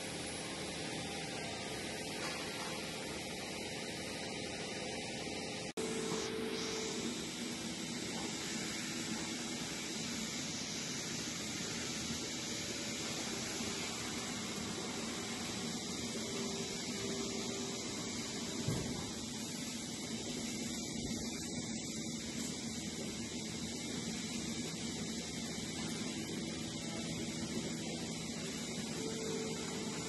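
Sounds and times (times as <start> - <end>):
milking machinery hiss: 5.8 - 30.0.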